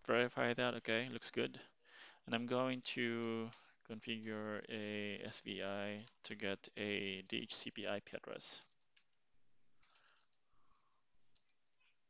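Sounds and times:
faint keyboard keystrokes: 8.6 - 9.2, 9.8 - 12.0.

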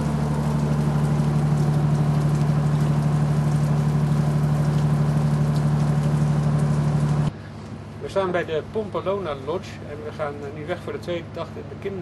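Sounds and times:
steady rain falling: 0.0 - 7.3
low mechanical hum: 0.0 - 12.0.

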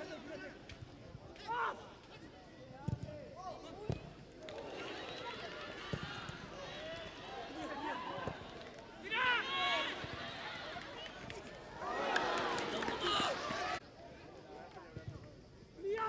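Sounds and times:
players shouting: 3.3 - 13.8.

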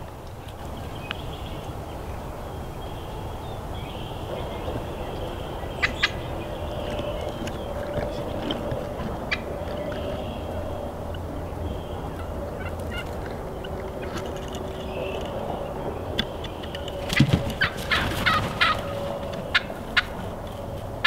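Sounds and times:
wild turkey calling: 2.4 - 20.5.

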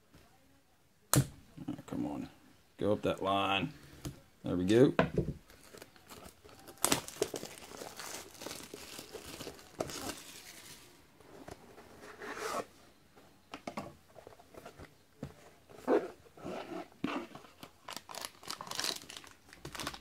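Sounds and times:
plastic shrink wrap crinkling: 5.5 - 11.0, 17.5 - 20.0.

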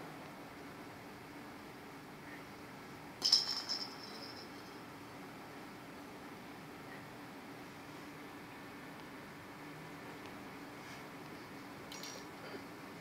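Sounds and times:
toy ball bell jingling: 3.2 - 4.8.

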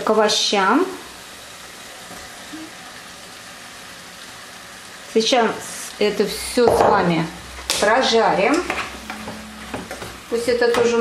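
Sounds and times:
food sizzling in a pot: 0.0 - 11.0.

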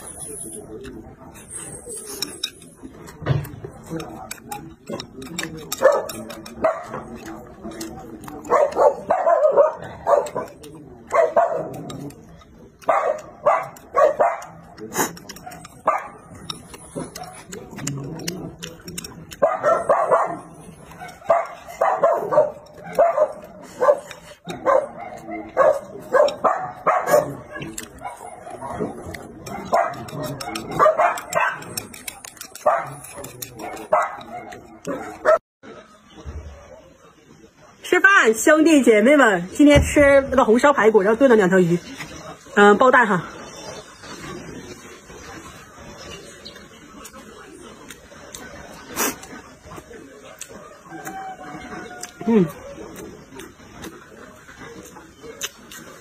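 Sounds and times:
dog barking: 5.7 - 7.3, 8.3 - 11.8, 12.8 - 14.7, 15.4 - 16.4, 19.3 - 31.8, 32.6 - 35.4.

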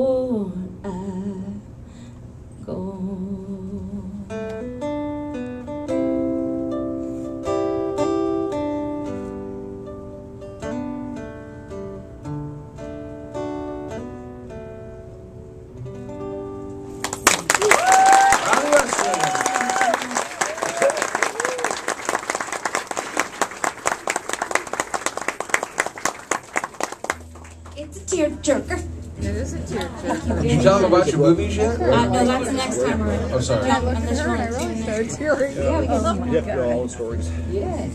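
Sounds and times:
acoustic guitar picked notes: 0.0 - 17.4, 27.1 - 37.9
audience applause: 17.0 - 27.8
whoops and cheers: 17.5 - 22.0.

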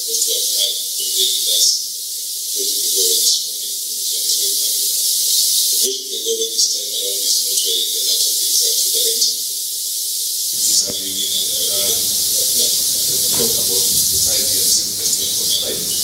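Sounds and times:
loud steady hiss: 9.9 - 16.0
thin muffled speech: 10.6 - 16.0.

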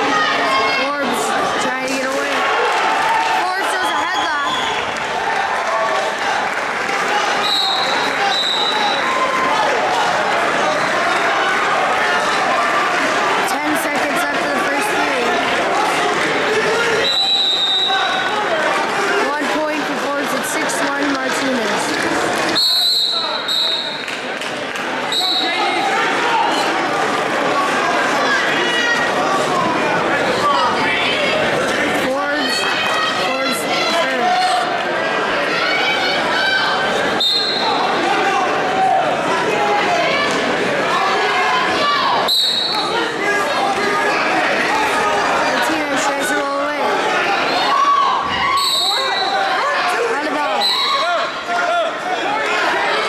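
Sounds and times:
coaches and spectators calling out: 0.0 - 53.0
crowd chatter: 0.0 - 53.0
referee's whistle: 3.8 - 4.9, 7.4 - 9.1, 17.0 - 18.3, 22.6 - 24.0, 25.1 - 25.6, 37.2 - 37.8, 42.2 - 43.0, 48.4 - 49.5, 50.5 - 51.3.

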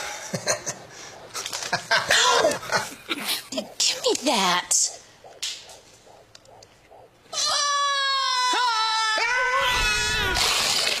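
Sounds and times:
man screaming: 7.3 - 10.5.

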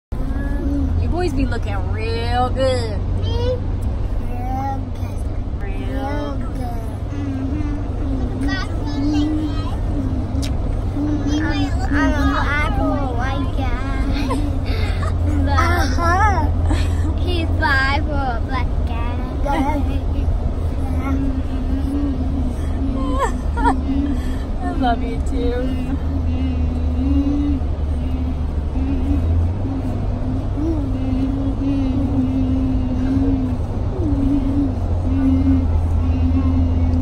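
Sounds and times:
road noise: 0.1 - 37.0
car cabin rumble: 0.2 - 37.0.

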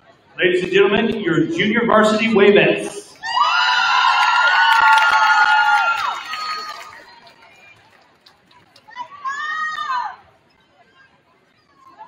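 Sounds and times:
high-pitched voices cheering: 3.2 - 7.1
hands clapping: 4.2 - 8.9.

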